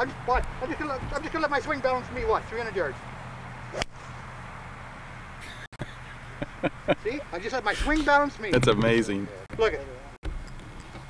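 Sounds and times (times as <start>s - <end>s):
golf club striking ball: 3.7s - 4.3s.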